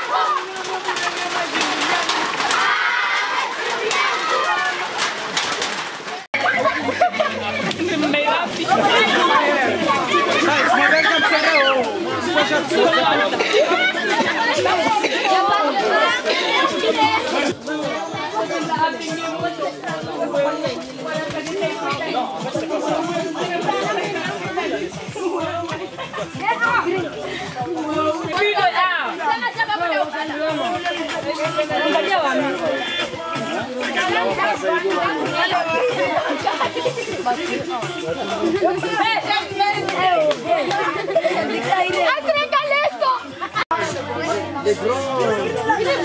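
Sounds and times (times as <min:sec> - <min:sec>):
children chattering and calling out: 0:00.0 - 0:46.0.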